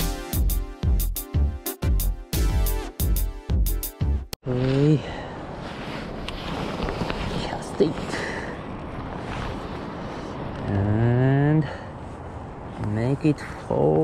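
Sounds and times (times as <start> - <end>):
electronic music: 0.0 - 4.4
person speaking: 4.4 - 5.3, 7.2 - 8.5, 12.8 - 14.0
wind: 4.4 - 14.0.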